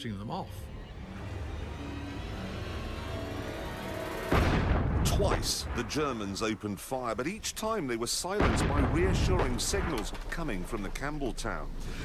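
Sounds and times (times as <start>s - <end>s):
tense background music: 0.0s - 12.0s
low rumble: 0.6s - 12.0s.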